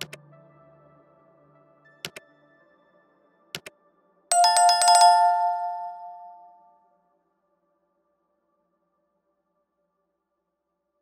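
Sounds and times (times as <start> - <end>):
bright bell strikes: 4.3 - 6.6.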